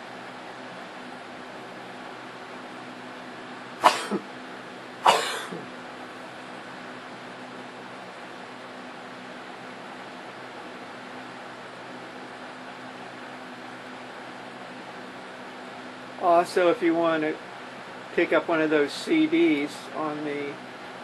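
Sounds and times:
steady low hum: 0.0 - 21.0
person coughing: 3.8 - 4.3, 5.0 - 5.6.

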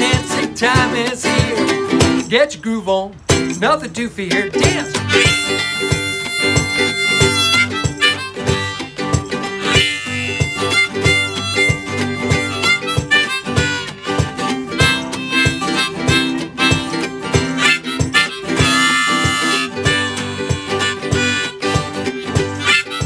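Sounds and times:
harmonica melody: 0.0 - 2.3, 4.6 - 23.0
strummed ukulele and guitar: 0.0 - 23.0.

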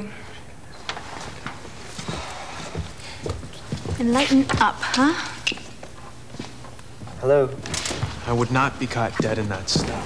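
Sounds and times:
footsteps on hard floor: 0.9 - 8.3, 8.9 - 10.0.

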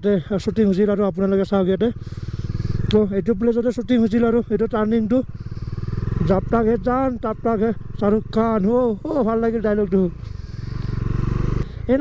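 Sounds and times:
man talking: 0.0 - 2.0, 2.9 - 5.4, 6.2 - 10.2, 11.8 - 12.0
motorcycle engine riding: 0.0 - 12.0.

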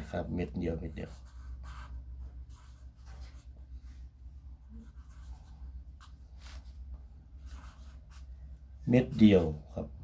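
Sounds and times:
pen scratching on paper: 0.5 - 4.0, 4.6 - 6.8, 7.4 - 8.4.

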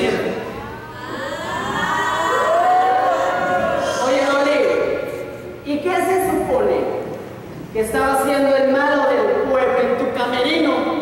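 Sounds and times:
person crying out: 0.8 - 4.6.

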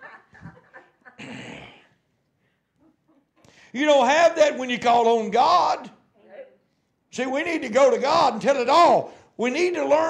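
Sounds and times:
man laughing breathily: 0.0 - 1.8.

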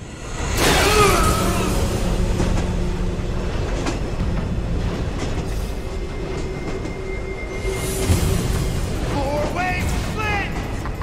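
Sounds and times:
mechanical rumble and rattle: 0.0 - 11.0.

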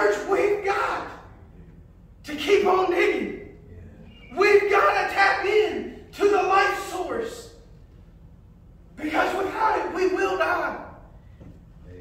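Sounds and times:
man shouting: 0.0 - 1.3, 4.3 - 7.6, 9.0 - 11.0.

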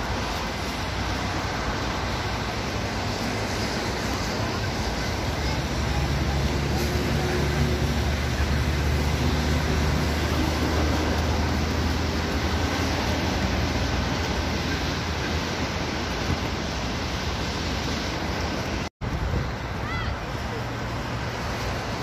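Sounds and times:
rushing outdoor noise: 0.0 - 22.0.

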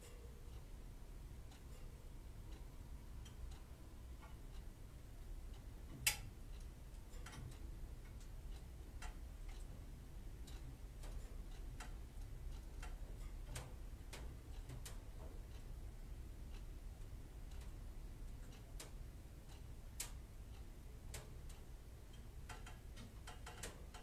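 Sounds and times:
faint irregular clicks and ticks: 0.0 - 24.0
low steady hum: 0.0 - 24.0.

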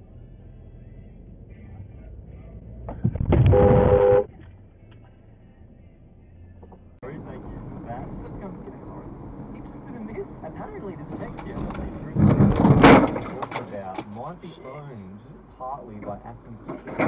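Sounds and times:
car road and engine noise: 0.0 - 17.0
loud car crash: 11.1 - 13.8.

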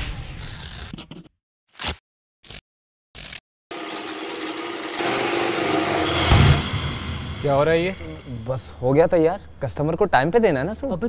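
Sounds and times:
sewing machine stitching: 3.7 - 6.6.

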